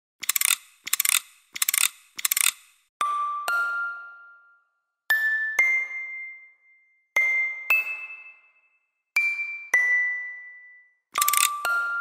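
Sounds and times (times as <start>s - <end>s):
ratchet-like mechanical clicking: 0.2s - 2.9s, 11.2s - 11.6s.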